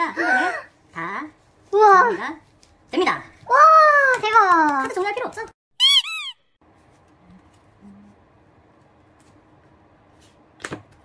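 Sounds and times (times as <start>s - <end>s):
squeaky high chirps: 5.8s - 6.6s.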